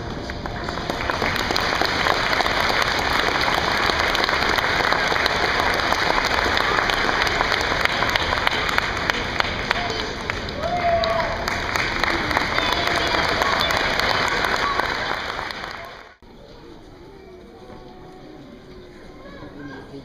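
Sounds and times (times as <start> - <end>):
audience applauding: 0.0 - 16.2.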